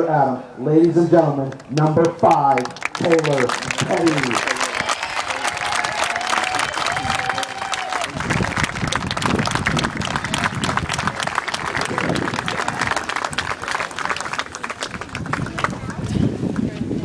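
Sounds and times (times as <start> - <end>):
crowd applauding: 1.5 - 16.7.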